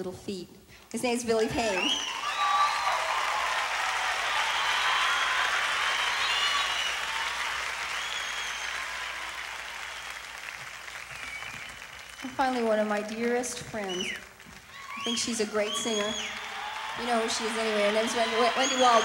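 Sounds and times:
audience applauding and cheering: 1.6s - 19.0s
people shouting: 15.7s - 19.0s.

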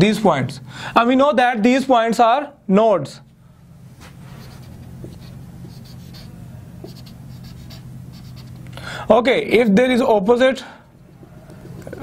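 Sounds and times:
whiteboard marker squeaking: 4.4s - 8.6s.

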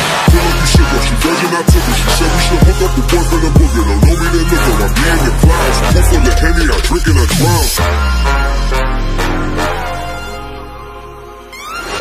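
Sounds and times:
rapping over a beat: 0.2s - 8.4s
heavy kick drum: 1.7s - 7.7s.

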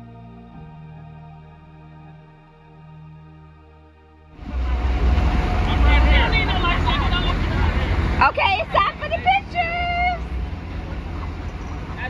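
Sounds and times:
people chattering: 4.4s - 12.0s
rush of boat under way: 4.4s - 12.0s
wind on microphone: 4.4s - 12.0s.

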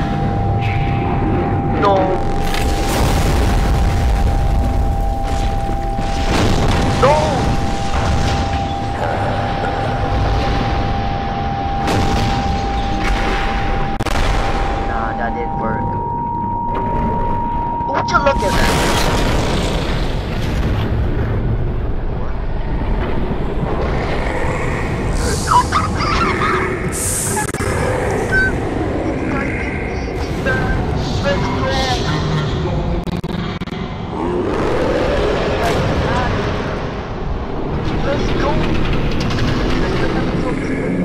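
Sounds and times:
steady held tone: 0.0s - 18.7s
deep rumbling booms: 0.0s - 25.5s.

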